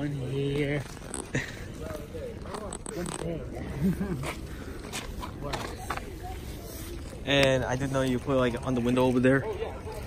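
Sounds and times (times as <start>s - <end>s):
faint indistinct voices talking: 0.0s - 10.0s.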